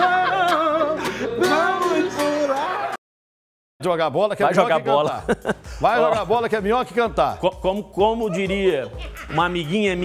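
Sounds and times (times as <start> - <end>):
man singing with vibrato: 0.0 - 3.0.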